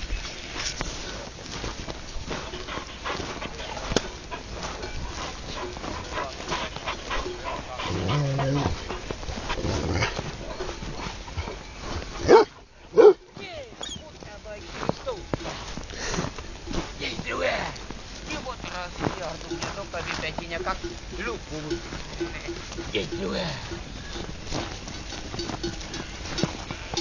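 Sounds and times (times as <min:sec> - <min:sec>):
flock of sheep moving: 0:00.0 - 0:27.0
dog barking: 0:12.2 - 0:13.2.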